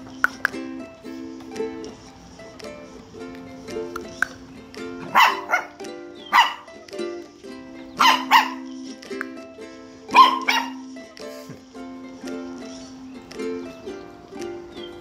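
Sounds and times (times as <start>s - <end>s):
ukulele background music: 0.0s - 15.0s
puppy barking: 5.0s - 6.8s, 8.0s - 8.7s, 10.1s - 10.8s.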